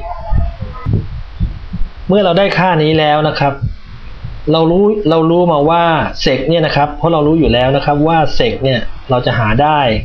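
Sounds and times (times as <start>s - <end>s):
low thumps and rumble: 0.0s - 6.1s, 7.0s - 8.2s.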